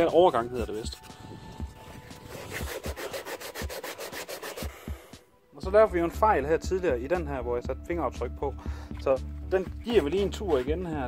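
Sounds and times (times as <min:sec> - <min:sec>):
sandpaper rubbing on plastic: 0:00.0 - 0:05.1, 0:09.8 - 0:11.0.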